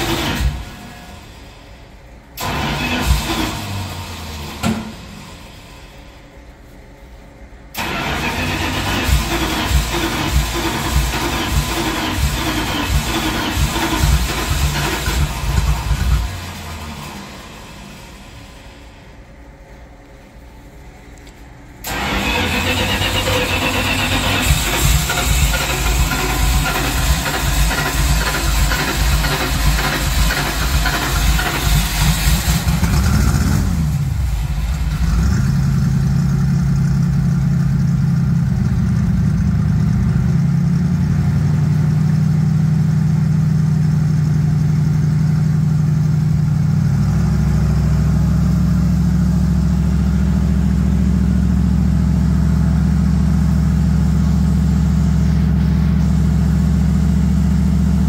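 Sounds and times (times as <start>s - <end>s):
snow vehicle engine idling: 21.8s - 58.0s.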